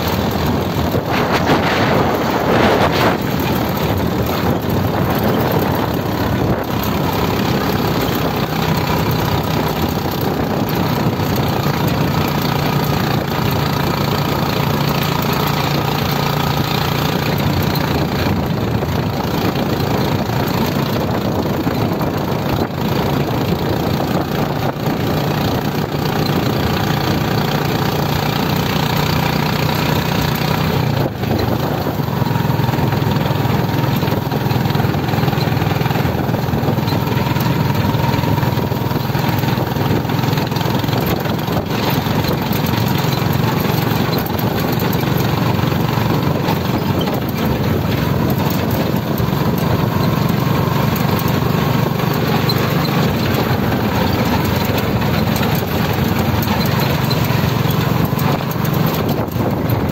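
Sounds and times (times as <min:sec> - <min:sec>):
motorcycle engine running: 0:00.0 - 0:59.9
wind noise on microphone: 0:00.0 - 0:59.9.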